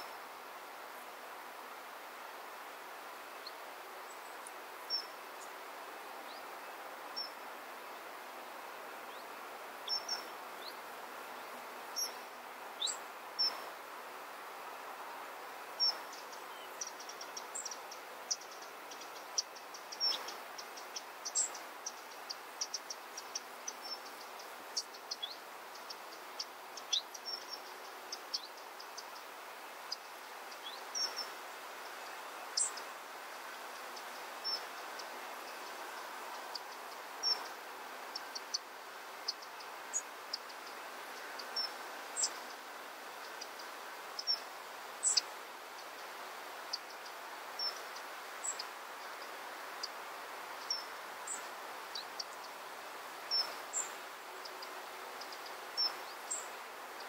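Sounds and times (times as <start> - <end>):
background hiss: 0.0 - 57.0
hummingbirds chipping: 14.7 - 57.0.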